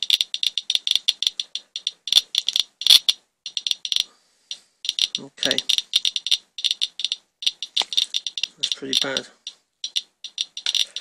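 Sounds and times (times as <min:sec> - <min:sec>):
geiger counter clicking rapidly: 0:00.0 - 0:11.0.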